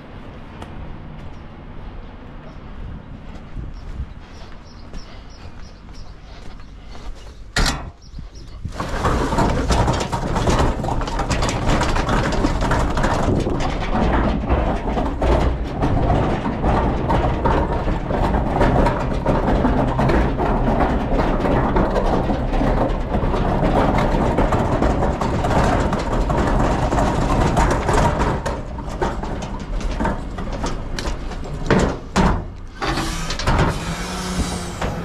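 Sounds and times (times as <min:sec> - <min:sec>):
metal bin rattling over paving: 0:06.0 - 0:35.0.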